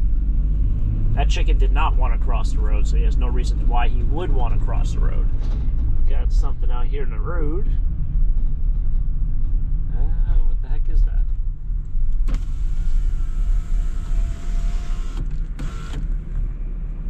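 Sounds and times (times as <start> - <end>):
vehicle engine and road rumble: 0.0 - 17.0
power window motor whine: 12.2 - 16.6.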